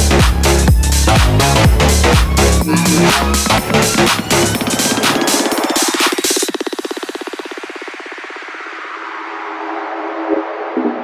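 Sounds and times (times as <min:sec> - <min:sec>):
electronic music: 0:00.0 - 0:11.0.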